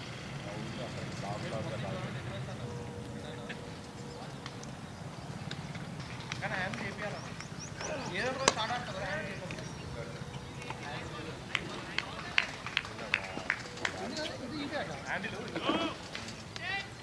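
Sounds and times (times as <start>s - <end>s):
players shouting: 10.5s - 17.0s.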